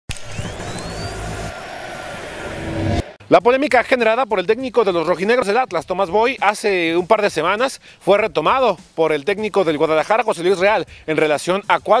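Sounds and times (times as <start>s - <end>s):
thin rising whistle: 0.1s - 3.2s
whooshing rush: 0.1s - 3.2s.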